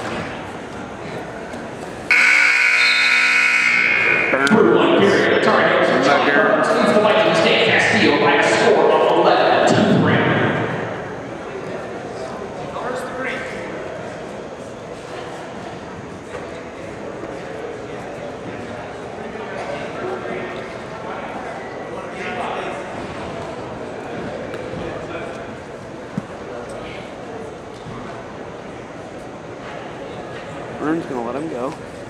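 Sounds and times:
murmur of voices: 0.0s - 32.0s.

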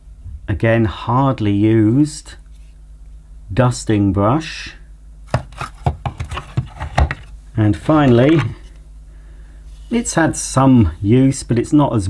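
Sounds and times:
hard plastic knocks and clicks: 5.3s - 7.3s.

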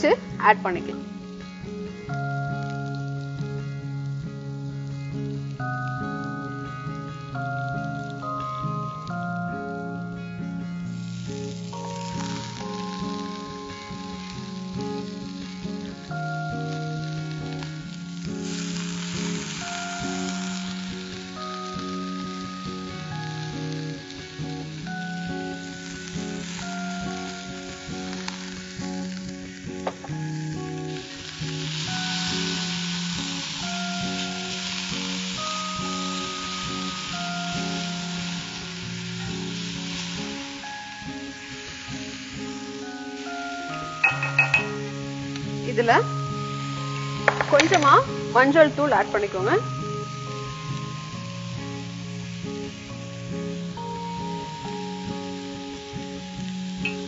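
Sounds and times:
onions sizzling in oil: 0.0s - 57.0s
soft background music: 0.0s - 57.0s.

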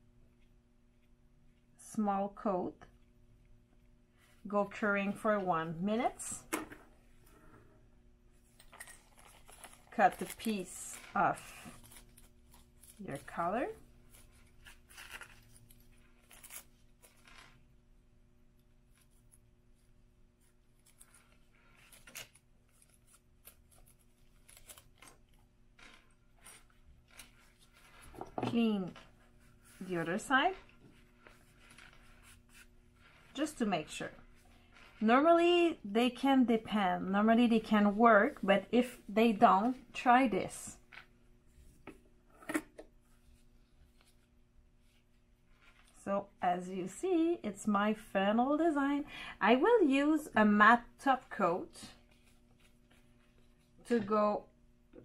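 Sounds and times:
faint steady hum: 0.0s - 55.0s
foil crinkling: 8.6s - 17.6s, 20.7s - 35.0s.

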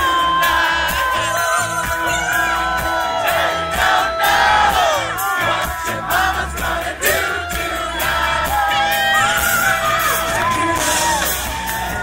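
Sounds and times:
crowd singing and shouting: 0.0s - 12.0s
live rock band playing: 0.0s - 12.0s.

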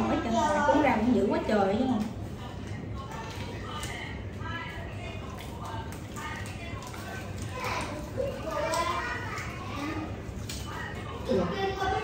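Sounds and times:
children chattering at play: 0.0s - 1.4s, 6.5s - 12.0s.

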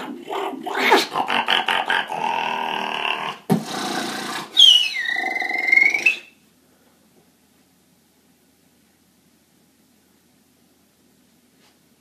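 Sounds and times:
low vocal hum: 0.0s - 3.4s
beatboxed buzzing bass: 3.1s - 4.6s
beatboxed kick: 3.5s - 3.9s
beatboxing clicks and snare hits: 3.5s - 4.6s
whistled tone sliding down: 4.6s - 6.4s.

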